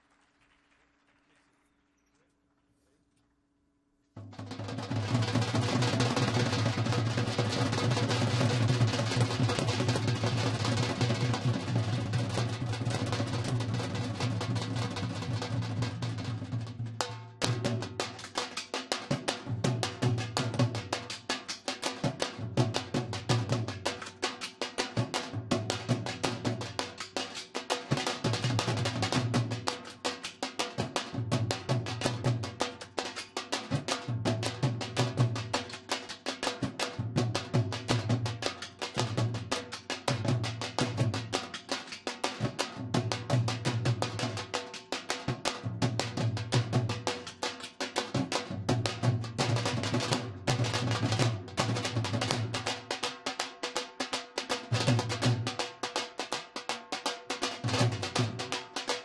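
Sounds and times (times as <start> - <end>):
barrel drums beaten with sticks: 4.2 - 59.0.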